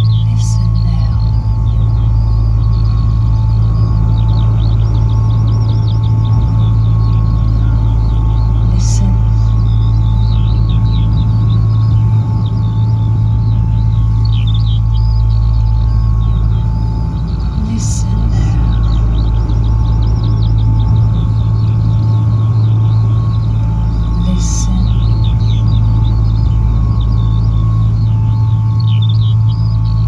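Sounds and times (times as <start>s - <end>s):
low electronic drone: 0.0s - 30.0s
twittering electronic chirps: 0.0s - 30.0s.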